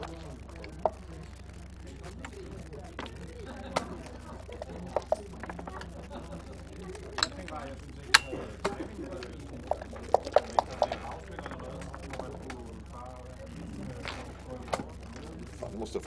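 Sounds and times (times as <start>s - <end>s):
game checkers clicking: 0.0s - 16.0s.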